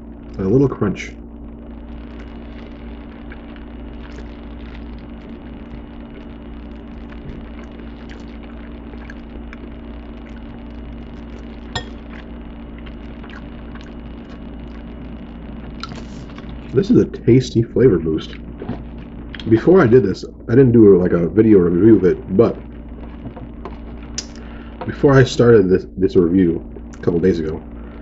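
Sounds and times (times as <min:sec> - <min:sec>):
low electrical hum: 0:00.0 - 0:28.0.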